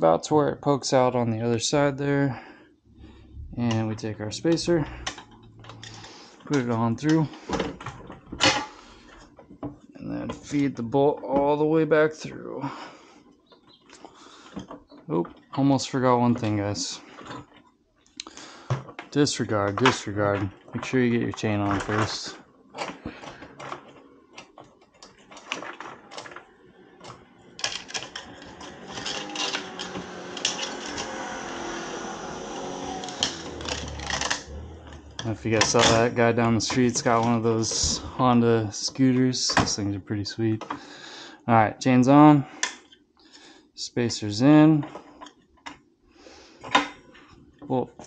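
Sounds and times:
metal scrape: 4.7s - 6.4s.

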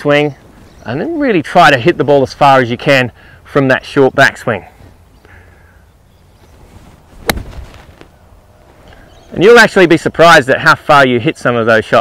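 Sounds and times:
golf club hitting ball: 7.2s - 7.8s.

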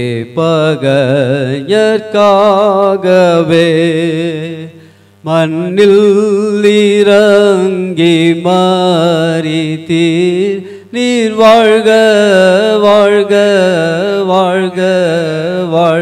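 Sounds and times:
man singing into a microphone: 0.0s - 16.0s.

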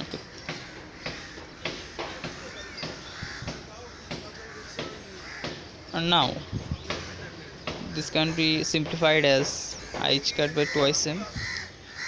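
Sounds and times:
harsh bird calls: 0.0s - 12.0s.

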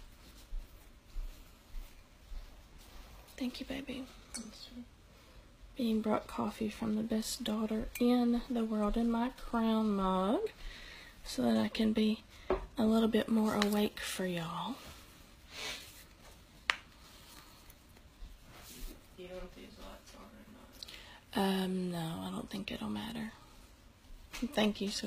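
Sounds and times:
soft airy hiss: 13.6s - 21.7s.

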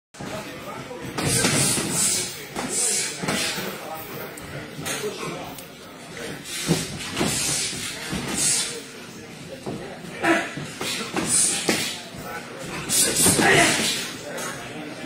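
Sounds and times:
voices: 0.2s - 15.0s.

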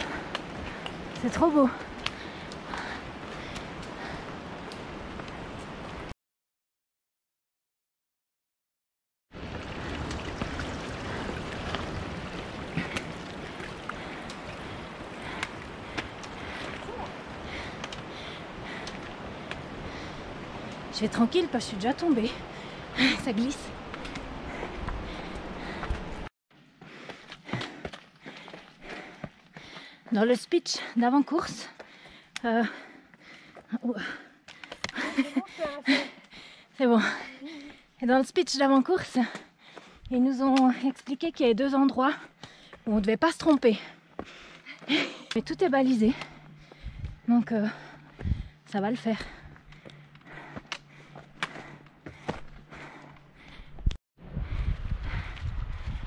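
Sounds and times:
trekking poles clicking on stone: 12.7s - 19.8s, 34.4s - 35.5s, 49.4s - 54.0s
footsteps on wet rock: 49.1s - 53.5s.

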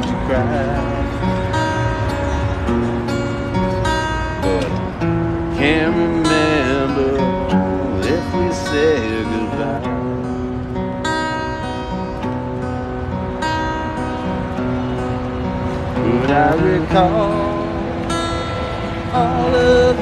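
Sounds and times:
man singing: 0.0s - 1.4s, 5.5s - 10.6s, 15.9s - 18.0s, 19.1s - 20.0s
acoustic guitar strumming: 0.0s - 20.0s.

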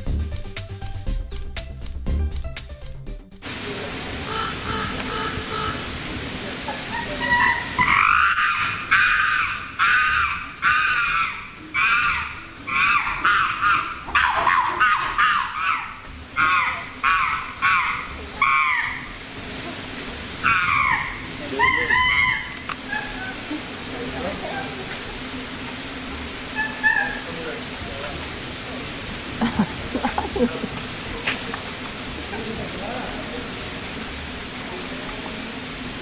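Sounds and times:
chimpanzee screaming: 6.8s - 19.2s, 20.4s - 24.8s, 26.5s - 27.4s.

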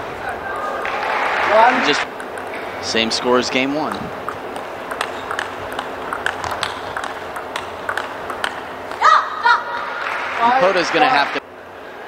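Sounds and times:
arena noise: 0.0s - 12.0s
table tennis ball clicks: 2.0s - 2.9s, 3.8s - 9.0s
high-pitched shout: 9.0s - 10.0s.

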